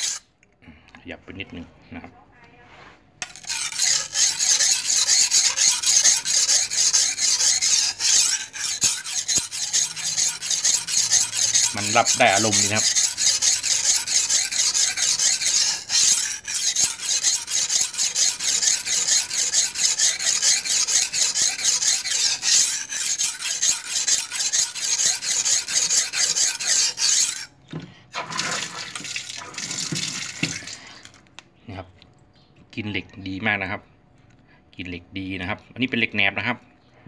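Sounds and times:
knife scraping on sharpening stone: 0.0 - 0.2, 3.2 - 27.6.

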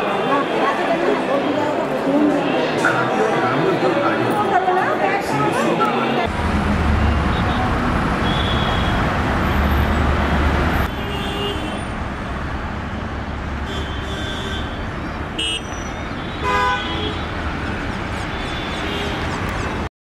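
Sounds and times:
rumble of vehicle engines: 5.8 - 19.9.

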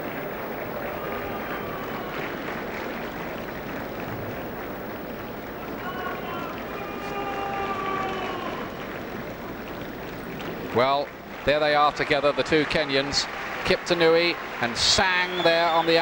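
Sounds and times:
stadium crowd murmur: 0.0 - 4.6, 5.5 - 16.0.

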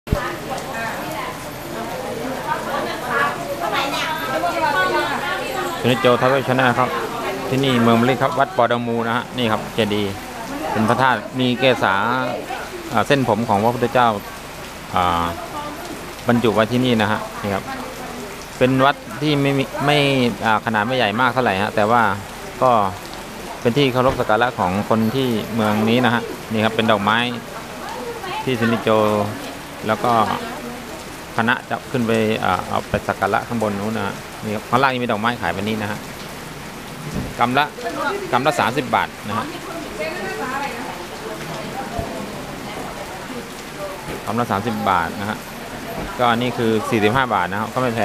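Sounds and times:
steady rain falling: 0.0 - 48.0.

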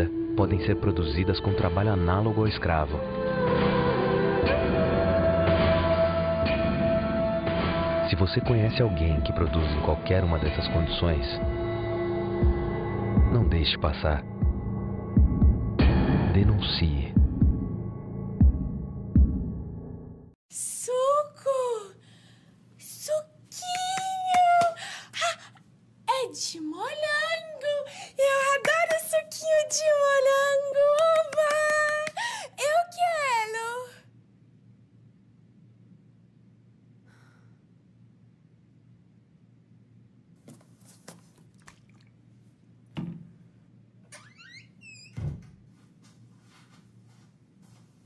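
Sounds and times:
plastic bottle knock: 43.0 - 43.3.

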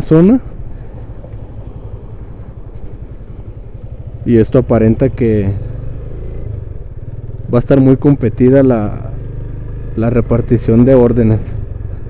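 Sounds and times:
road and wind noise: 0.0 - 12.0
motorcycle engine running: 0.4 - 12.0.

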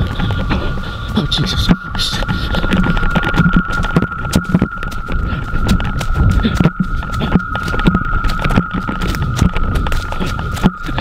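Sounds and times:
high ringing tone: 0.0 - 11.0
running footsteps on leaves: 0.0 - 11.0.

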